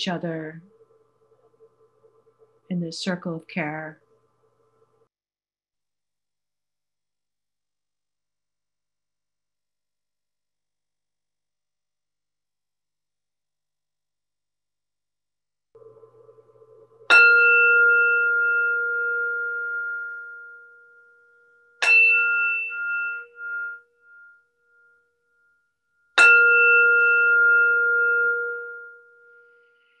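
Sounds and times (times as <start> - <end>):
meditation bell ringing: 15.8 - 30.0.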